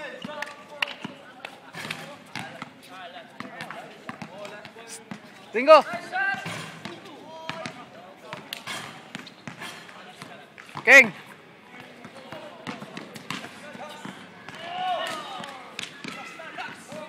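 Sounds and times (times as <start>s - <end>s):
basketball bouncing on hard court: 1.8s - 2.8s, 3.4s - 5.3s, 5.9s - 10.9s, 11.8s - 17.0s.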